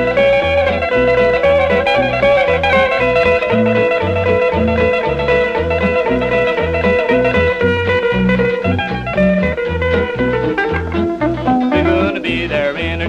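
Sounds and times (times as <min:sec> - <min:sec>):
electric guitar lead note: 0:00.0 - 0:13.0
steady bass beat: 0:00.0 - 0:13.0.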